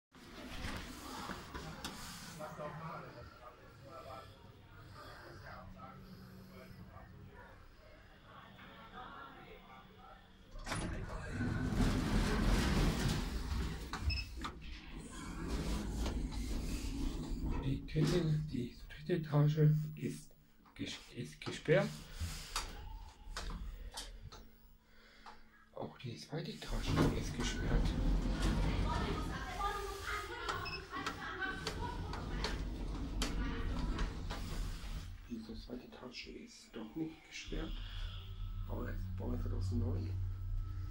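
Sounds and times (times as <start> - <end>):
lift machinery hum and rumble: 10.6 - 18.8, 26.7 - 35.1, 37.6 - 40.9.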